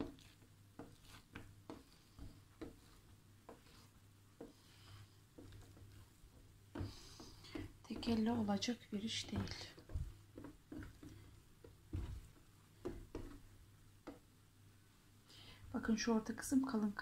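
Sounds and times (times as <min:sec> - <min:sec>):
hands rubbing dough: 0:00.0 - 0:14.2.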